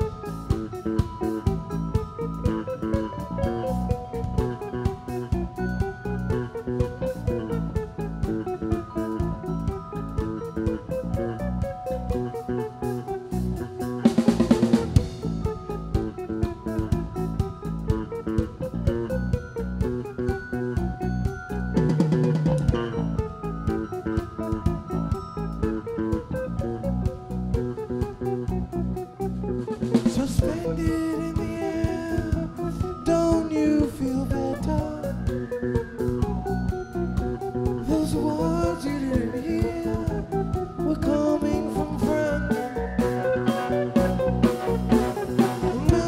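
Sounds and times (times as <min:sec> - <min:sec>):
bass line: 0:00.0 - 0:46.0
drum kit beat: 0:00.0 - 0:46.0
guitar: 0:00.0 - 0:46.0.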